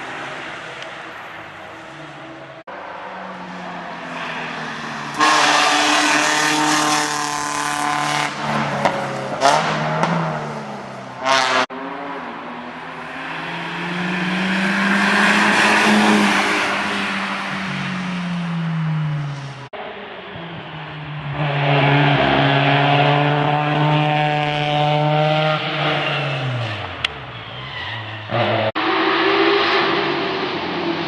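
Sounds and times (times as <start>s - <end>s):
race car approaching: 0.0s - 31.0s.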